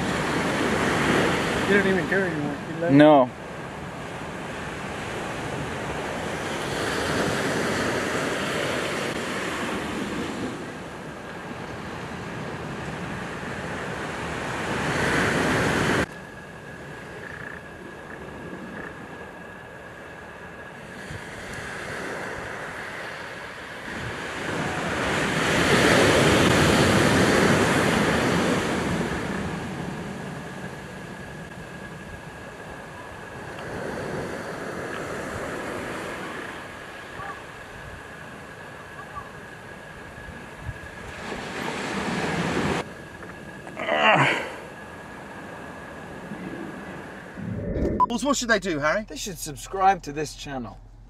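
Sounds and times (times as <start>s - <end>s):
ocean surf washing on beach: 0.0s - 50.7s.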